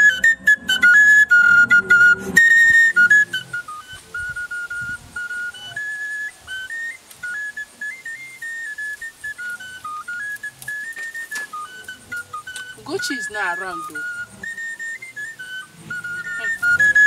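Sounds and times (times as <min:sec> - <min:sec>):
fuller musical accompaniment: 0:00.0 - 0:17.0
high flute-like melody: 0:00.0 - 0:17.0.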